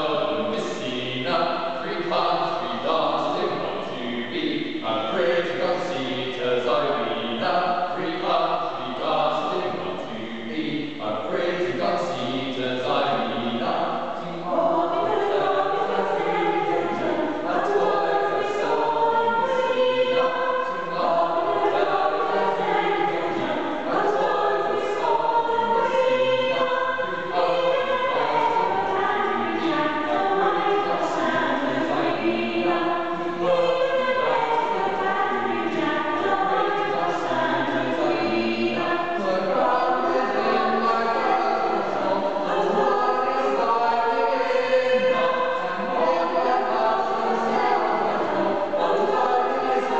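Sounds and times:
mixed choir singing in harmony: 0.0 - 49.9.

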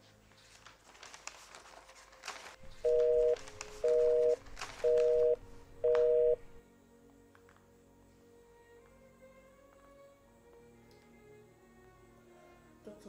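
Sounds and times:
telephone busy signal beeps: 2.8 - 6.6.

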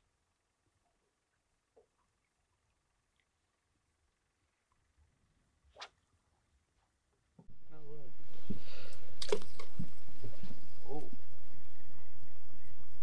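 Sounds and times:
indistinct voices: 7.6 - 11.8.

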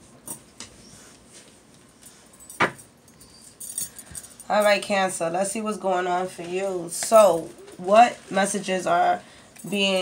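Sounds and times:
light metallic jingling: 2.1 - 4.9.

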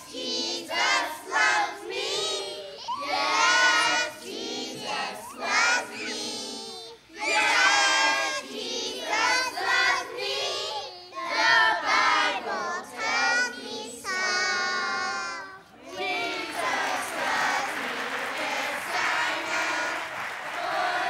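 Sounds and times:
children singing: 0.0 - 21.0.

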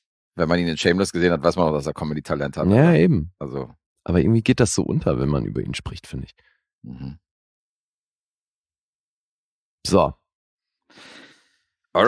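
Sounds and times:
man breathing softly: 10.9 - 11.8.

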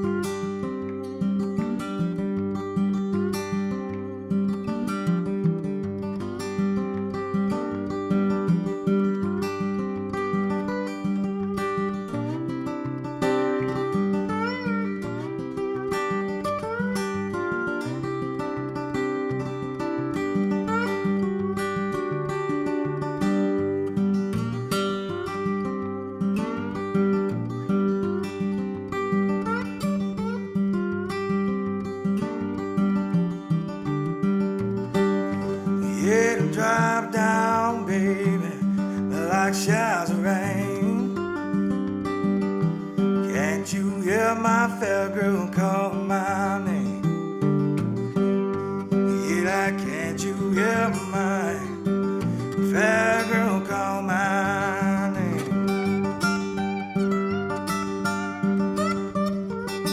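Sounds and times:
slide acoustic guitar: 0.0 - 59.9.

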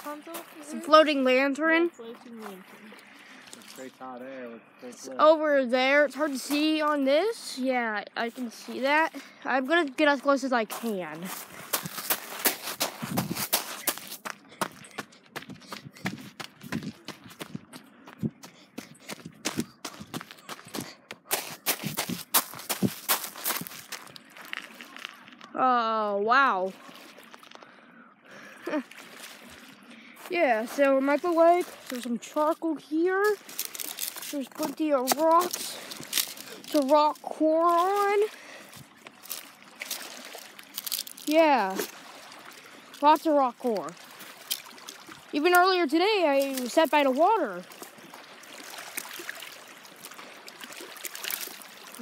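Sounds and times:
child's voice: 0.0 - 3.0, 5.0 - 11.3, 34.3 - 35.8
footsteps on rocky sandy shore: 0.0 - 3.9, 5.8 - 7.6, 8.2 - 25.6, 26.6 - 27.7, 28.9 - 52.0
faint outdoor hiss: 0.0 - 15.4.

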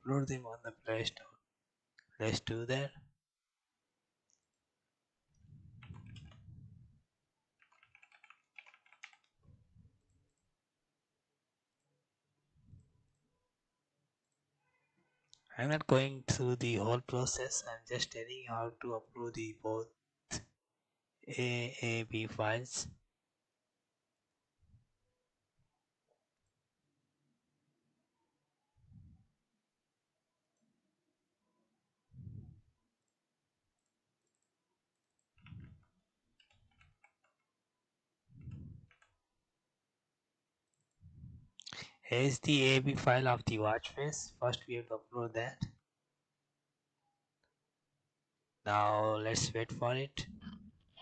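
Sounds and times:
computer keyboard typing: 5.8 - 6.5, 7.6 - 9.4, 33.8 - 37.6, 38.4 - 39.2.

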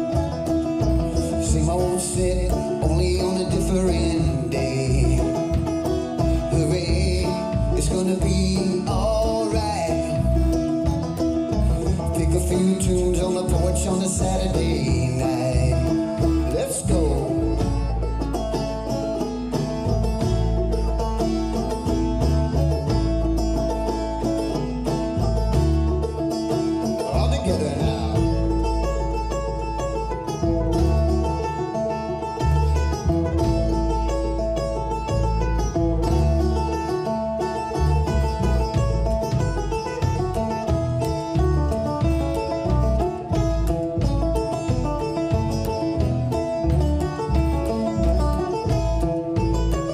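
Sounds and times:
banjo picking: 0.0 - 49.9
plucked double bass: 0.0 - 49.9.

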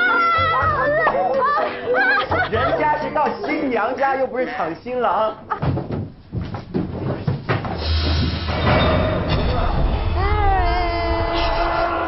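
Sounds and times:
low rumble: 8.6 - 12.0.

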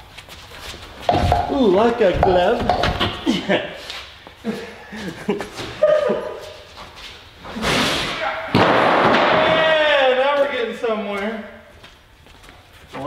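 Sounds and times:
steel stairs crashing onto floor: 1.1 - 3.3.

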